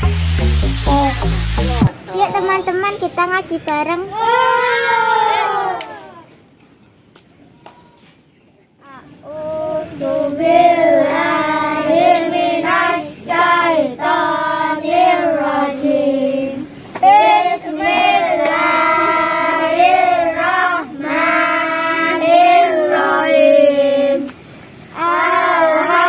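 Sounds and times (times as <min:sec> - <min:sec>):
children singing in unison: 0:09.2 - 0:24.3, 0:24.9 - 0:26.0.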